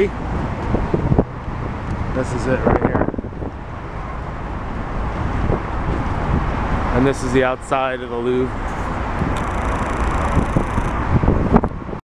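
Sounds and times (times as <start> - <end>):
wind buffeting microphone: 0.0 - 7.3, 8.4 - 12.0
bus engine rumble: 0.0 - 12.0.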